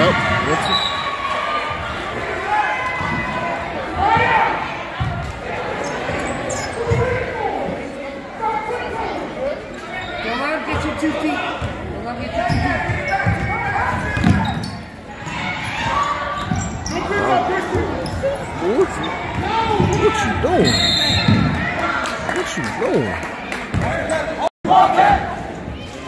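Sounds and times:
voices echoing in hall: 0:00.0 - 0:26.0
shoe squeaks: 0:05.8 - 0:07.0
basketball bouncing on court: 0:11.6 - 0:14.7, 0:19.2 - 0:20.4, 0:21.1 - 0:21.6.

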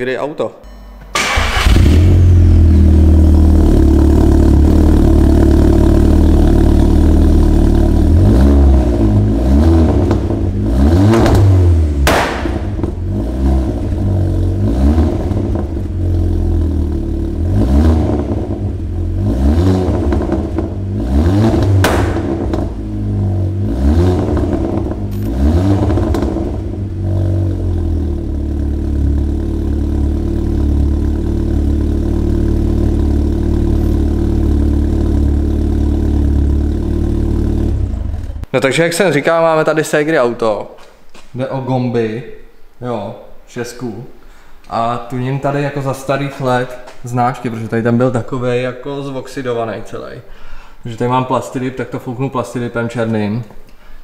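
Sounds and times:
car engine idling: 0:01.1 - 0:08.3, 0:09.9 - 0:19.3, 0:19.9 - 0:38.5
car engine revving: 0:01.2 - 0:38.5
exhaust pops and cracks: 0:11.1 - 0:13.0, 0:21.5 - 0:22.8, 0:24.2 - 0:26.7.

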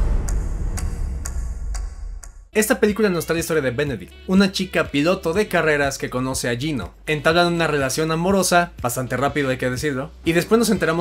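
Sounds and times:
low rumbling drone: 0:00.0 - 0:02.5.

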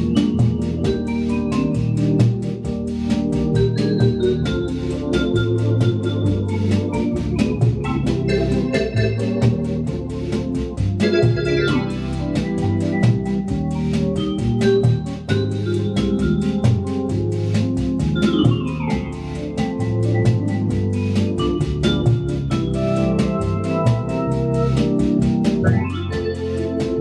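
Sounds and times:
organ playing bossa nova: 0:00.0 - 0:27.0
pedal bass notes: 0:00.0 - 0:27.0
ticking percussion beat: 0:00.0 - 0:27.0.

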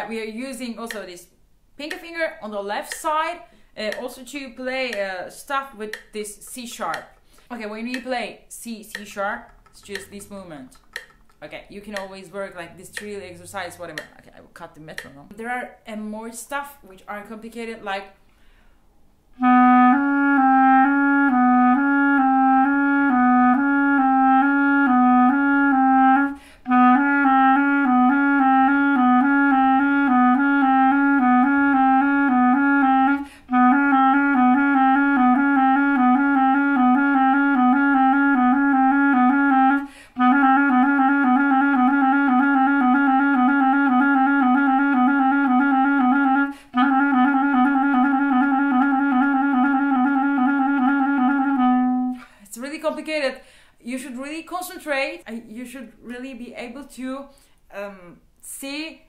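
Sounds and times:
quick breaths: 0:07.2 - 0:07.5, 0:18.2 - 0:18.9, 0:26.4 - 0:26.7, 0:33.2 - 0:33.5, 0:39.8 - 0:40.2, 0:53.4 - 0:53.8, 0:57.3 - 0:57.7
clarinet playing fast runs: 0:19.4 - 0:52.2.

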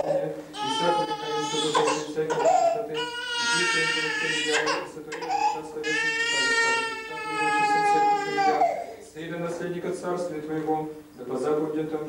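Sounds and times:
baby crying: 0:00.0 - 0:09.0.

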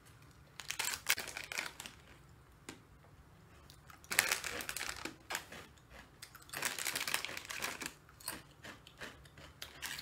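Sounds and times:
plastic snack packet crinkling: 0:00.6 - 0:02.2, 0:03.9 - 0:08.4.

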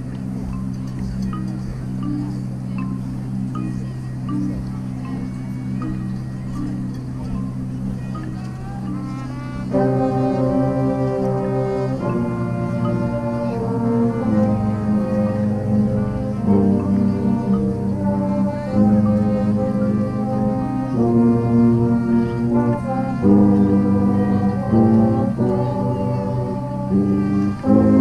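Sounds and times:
brass band playing held chords: 0:00.0 - 0:28.0.

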